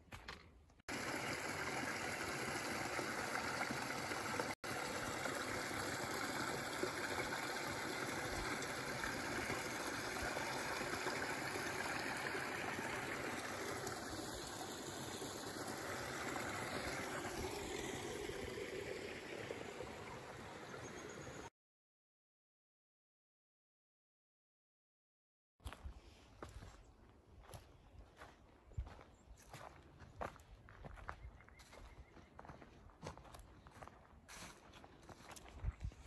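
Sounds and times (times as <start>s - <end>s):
brook flowing over rocks: 0.9s - 21.5s.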